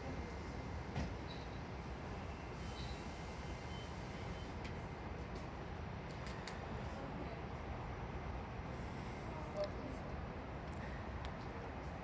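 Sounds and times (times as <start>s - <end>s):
train wheels rumbling on rail: 0.0s - 7.3s.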